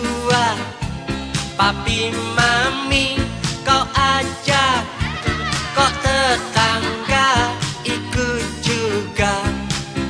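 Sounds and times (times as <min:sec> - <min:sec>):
pop song with lead vocal: 0:00.0 - 0:10.0.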